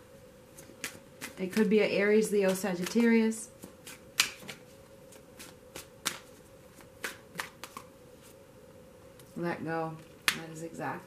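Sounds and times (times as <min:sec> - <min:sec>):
cards snapping: 0:03.8 - 0:04.6, 0:05.4 - 0:07.9.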